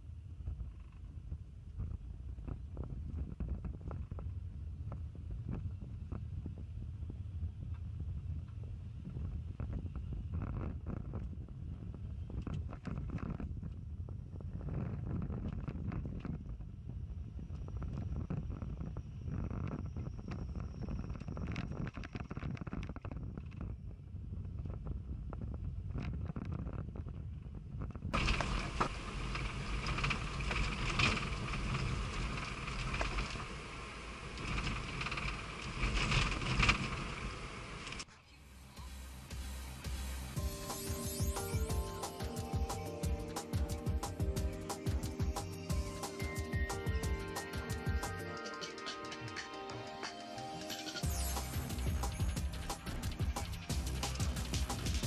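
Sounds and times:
car engine rumble: 26.9s - 48.3s, 51.0s - 55.0s
car cabin noise: 28.2s - 38.1s.

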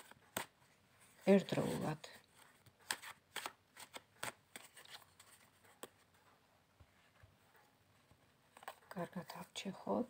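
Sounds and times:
cards snapping and rustling: 0.0s - 0.6s, 2.3s - 6.0s.

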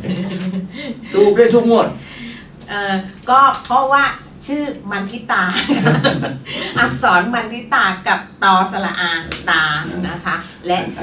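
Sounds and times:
woman talking and chuckling: 5.4s - 7.2s.

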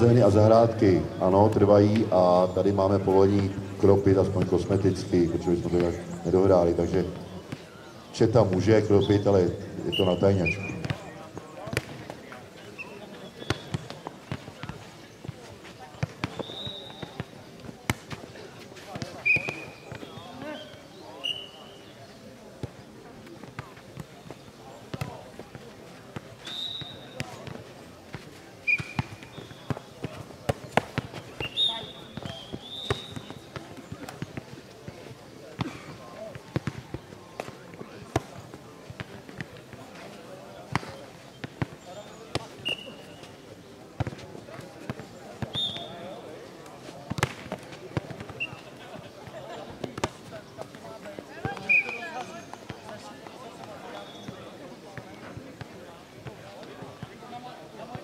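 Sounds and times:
murmur of voices: 0.0s - 58.0s
ball kicked and bouncing on clay: 10.6s - 12.2s, 13.4s - 20.9s, 22.6s - 42.6s, 44.0s - 45.9s, 46.8s - 48.5s.

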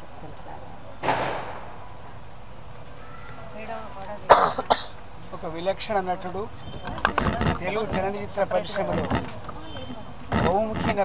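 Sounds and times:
faint talking: 3.0s - 11.0s
person coughing: 4.3s - 4.9s.

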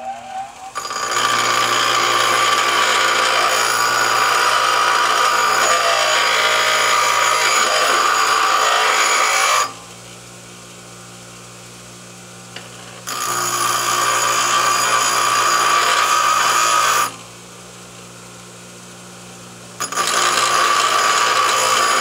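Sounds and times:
bench grinder grinding metal: 0.0s - 9.8s, 12.6s - 17.2s, 19.8s - 22.0s
grinder motor humming: 0.5s - 9.8s, 12.6s - 17.2s, 19.8s - 22.0s.

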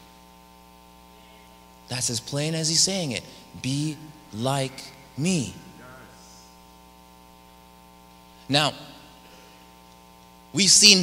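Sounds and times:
electrical mains hum: 0.0s - 11.0s
man speaking: 1.9s - 6.6s, 8.5s - 9.1s, 10.6s - 11.0s.

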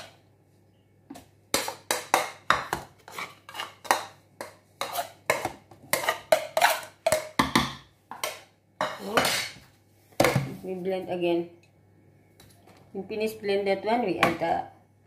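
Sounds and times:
utensil scraping a plate: 3.0s - 4.0s, 4.8s - 7.0s.

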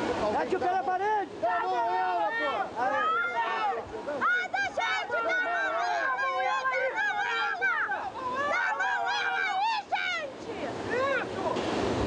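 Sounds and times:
people shouting excitedly: 1.2s - 11.3s.

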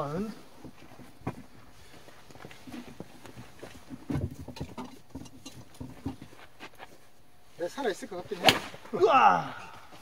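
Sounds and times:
quiet footsteps: 0.4s - 9.0s.

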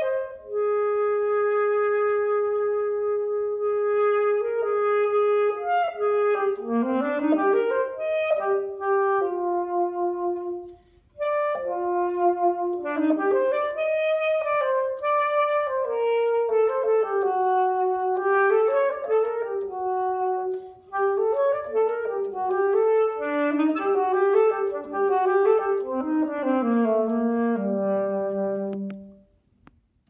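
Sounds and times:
solo alto saxophone melody: 0.0s - 29.4s.

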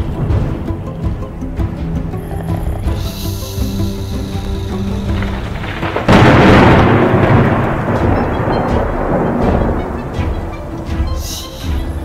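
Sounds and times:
loud thunder clap rumbling: 0.0s - 1.2s, 3.0s - 11.9s.

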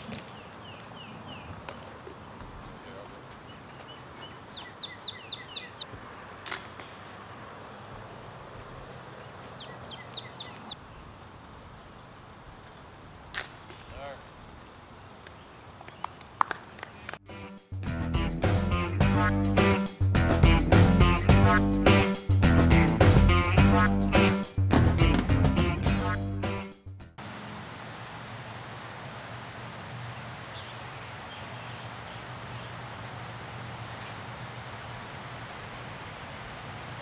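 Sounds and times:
disc striking metal chains: 0.0s - 1.3s, 6.4s - 7.8s, 13.3s - 15.2s
birds chirping: 0.0s - 11.2s, 29.8s - 37.0s
guitar music with a beat: 17.2s - 27.1s.

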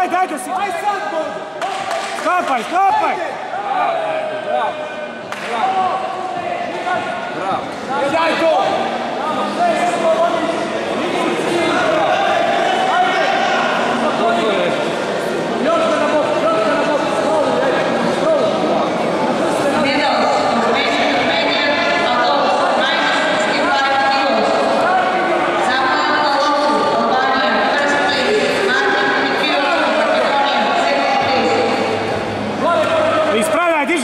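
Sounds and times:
people talking and calling out: 0.0s - 34.0s.

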